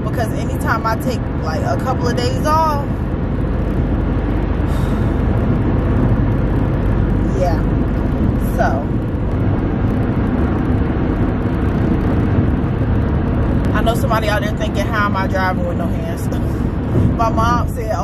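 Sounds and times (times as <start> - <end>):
car road and engine noise: 0.0 - 18.0.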